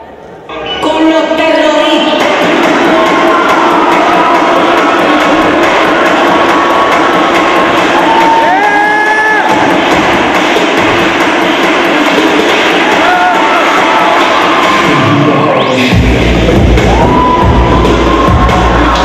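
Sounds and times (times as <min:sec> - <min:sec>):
music playing: 0:00.0 - 0:19.0
audience cheering and shouting: 0:02.2 - 0:19.0.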